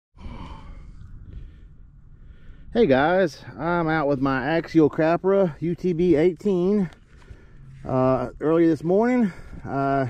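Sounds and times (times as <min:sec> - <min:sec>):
person exhaling breathily: 0:00.2 - 0:02.7
low rumble: 0:00.2 - 0:10.0.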